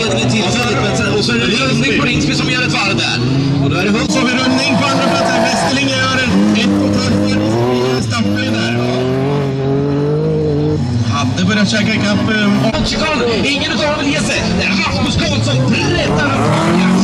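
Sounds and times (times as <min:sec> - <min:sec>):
race car engines revving: 0:00.0 - 0:17.0.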